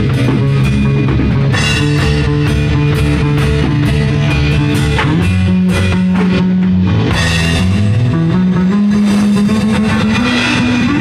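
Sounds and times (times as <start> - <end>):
drum kit with cymbals: 0.0 - 11.0.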